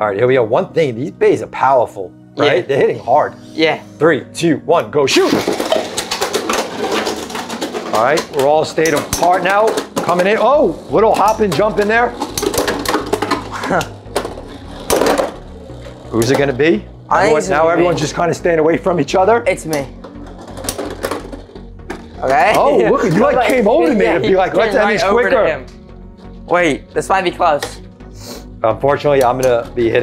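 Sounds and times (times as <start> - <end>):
low background music: 0.0 - 30.0
tops clacking against plastic: 5.3 - 10.4
spinning tops whirring: 5.5 - 18.2.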